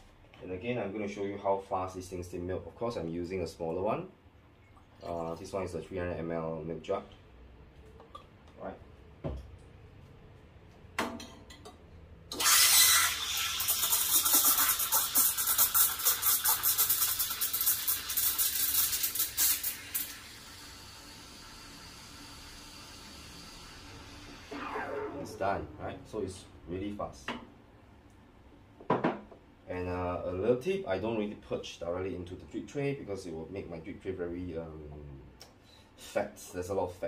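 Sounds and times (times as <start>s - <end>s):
steam wand hissing in milk: 12.4s - 25.4s.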